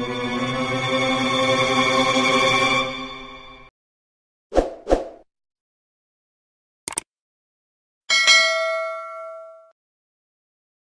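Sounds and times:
bright bell ding: 8.1 - 9.8.

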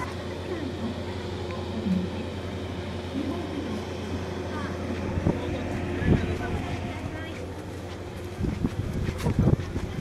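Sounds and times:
distant voices: 0.0 - 10.0
steady low hum: 0.0 - 10.0
wind on microphone: 8.2 - 10.0.

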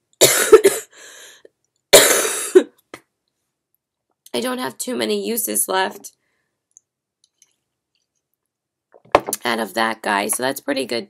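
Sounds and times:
woman coughing: 0.2 - 1.0, 2.0 - 2.8.

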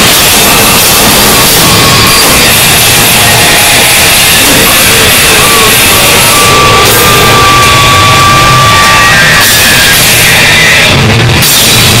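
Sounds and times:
harsh distorted noise music: 0.0 - 12.0
steady high whining tone: 0.0 - 12.0.

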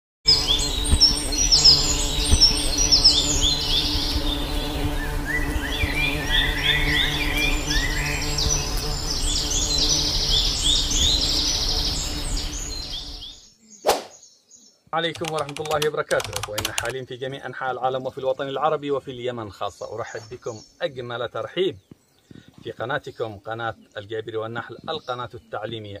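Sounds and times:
honeybees buzzing: 0.3 - 14.2
birds chirping: 0.3 - 26.0.

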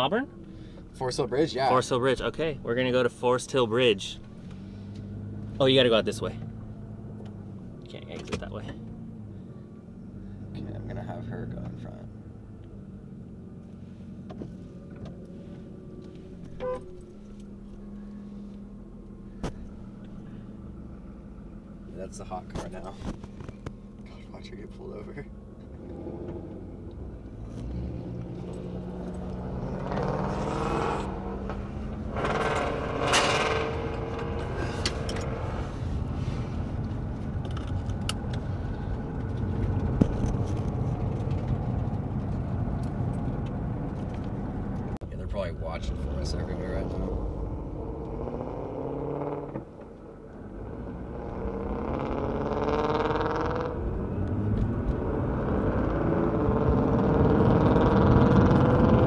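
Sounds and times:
loud car exhaust accelerating: 25.3 - 59.0.

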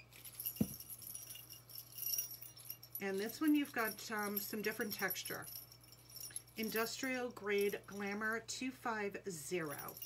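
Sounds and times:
chain necklace jingling: 0.0 - 8.2, 9.6 - 10.0.

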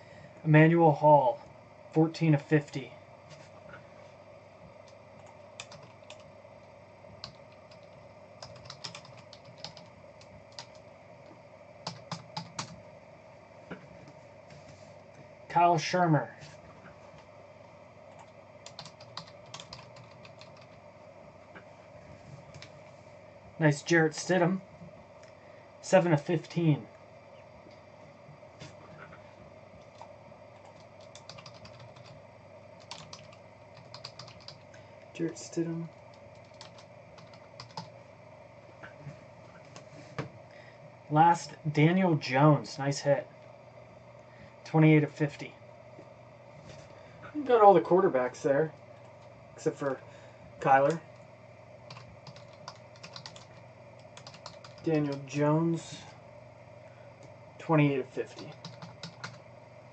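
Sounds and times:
keyboard typing: 4.8 - 6.3, 7.2 - 10.8, 11.8 - 12.8, 18.1 - 20.8, 29.8 - 32.2, 32.8 - 34.8, 35.9 - 38.0, 51.9 - 55.2, 58.4 - 59.4.

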